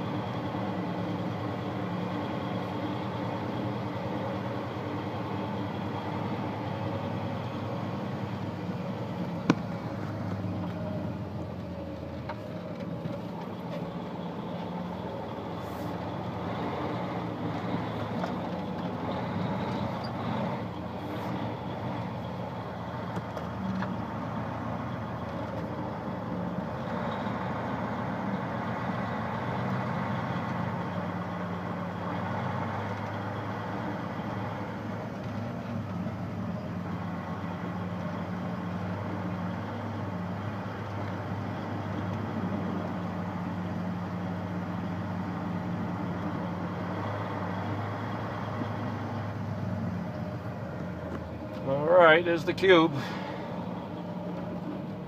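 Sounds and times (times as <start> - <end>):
road noise: 0.0 - 55.0
truck engine running: 0.0 - 55.0.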